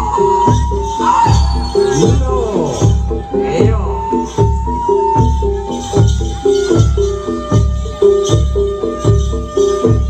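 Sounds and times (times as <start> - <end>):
repeated melodic notes: 0.0 - 10.0.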